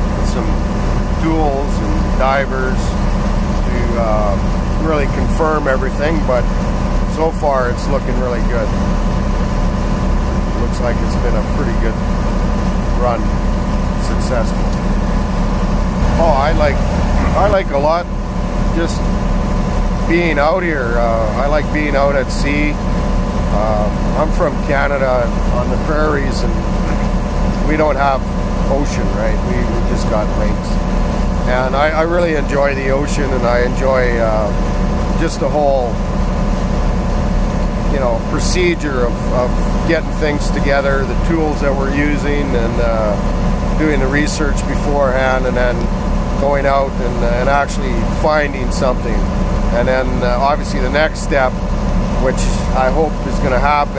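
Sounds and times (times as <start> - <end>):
ship engine low rumble: 0.0 - 53.9.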